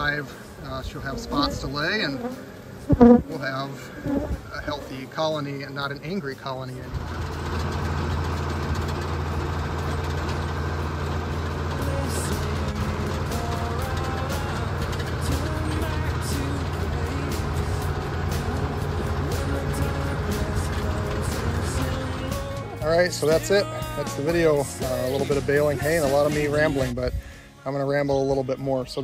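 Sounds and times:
faint background music: 0.0s - 6.9s, 11.6s - 29.0s
tractor engine running: 0.0s - 26.9s
manure spreader clicks and clatter: 6.9s - 22.4s.

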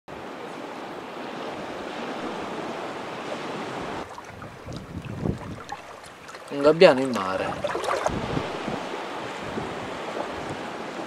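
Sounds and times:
sea surf washing: 0.1s - 11.0s
wind: 0.1s - 11.0s.

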